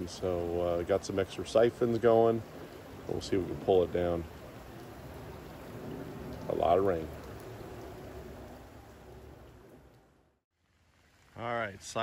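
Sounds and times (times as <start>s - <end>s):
rain falling on water: 0.0s - 12.0s.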